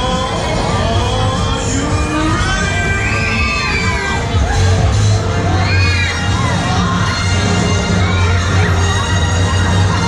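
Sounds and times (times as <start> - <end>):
loud fairground ride music: 0.0 - 10.0
riders shouting and screaming: 0.0 - 10.0.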